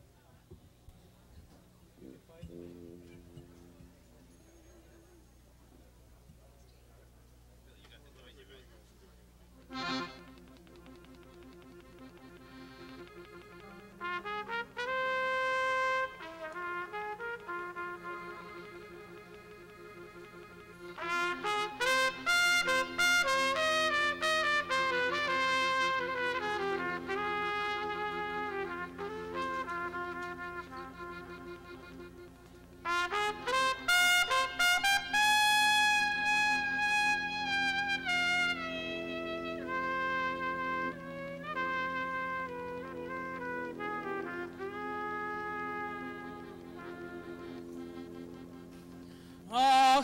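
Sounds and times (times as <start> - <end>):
held low chord: 1.8 - 6.5, 9.4 - 50.0
trumpet playing klezmer melody: 2.0 - 4.6, 9.6 - 50.0.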